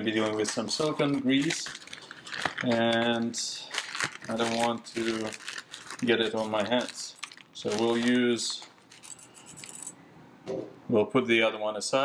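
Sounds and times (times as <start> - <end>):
plastic packaging rustling: 0.0 - 9.9.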